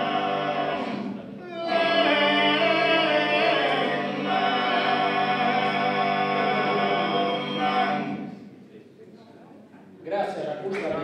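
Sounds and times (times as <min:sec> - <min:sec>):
men's vocal quartet chord: 0:00.0 - 0:08.4.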